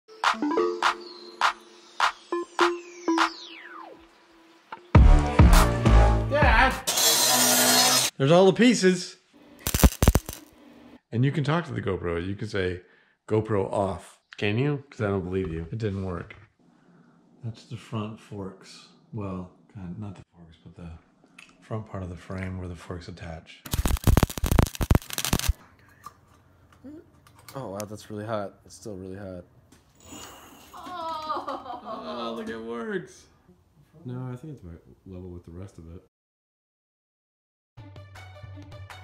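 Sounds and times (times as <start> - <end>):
miter saw cutting steel tubing: 6.8 - 8.1
welder arc crackling: 9.6 - 10.5, 23.7 - 25.6.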